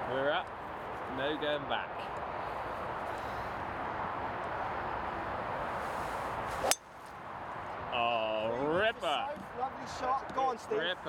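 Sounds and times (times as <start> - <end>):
golf club striking ball: 6.6 - 6.9.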